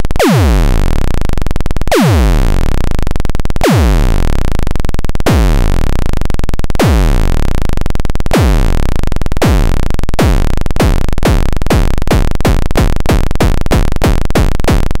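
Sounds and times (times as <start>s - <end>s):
synthesizer zap with pitch sweep: 0.2s - 3.0s, 3.6s - 4.6s, 5.2s - 14.9s.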